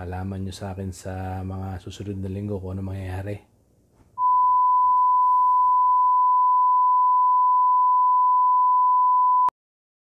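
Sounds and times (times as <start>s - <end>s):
steady electronic beep tone: 4.2s - 9.5s.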